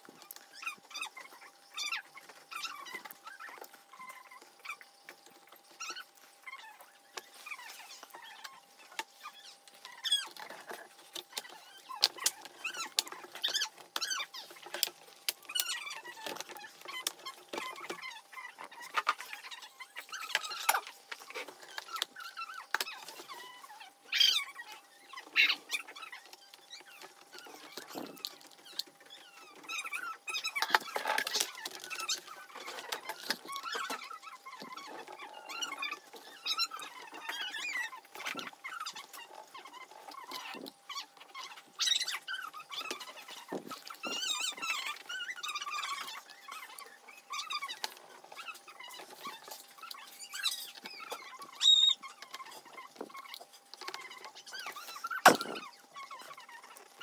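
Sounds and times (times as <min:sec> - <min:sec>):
plastic clicks and scrapes: 0:25.1 - 0:57.0.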